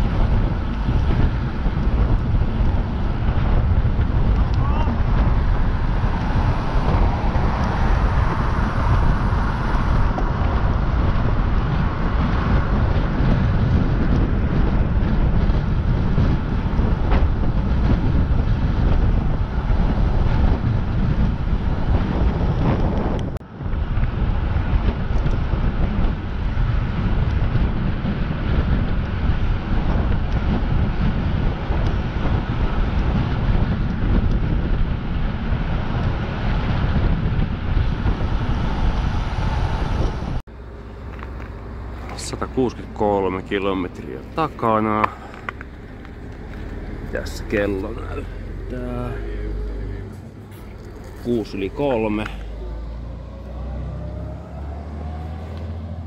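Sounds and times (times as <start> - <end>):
road noise: 0.0 - 56.0
wind buffeting microphone: 0.0 - 56.0.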